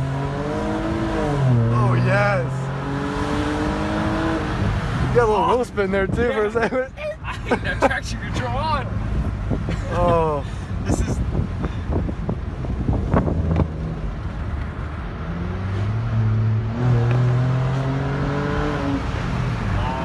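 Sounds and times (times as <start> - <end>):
person exclaiming: 19.7 - 20.0.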